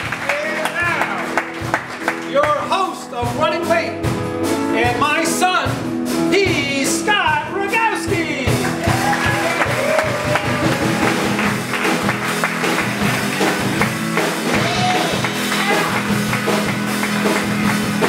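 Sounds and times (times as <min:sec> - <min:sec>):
live rock band playing: 0:00.0 - 0:18.0.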